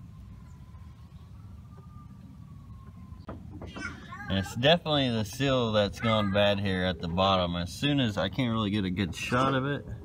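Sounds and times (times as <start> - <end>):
faint distant siren: 0.0 - 10.0.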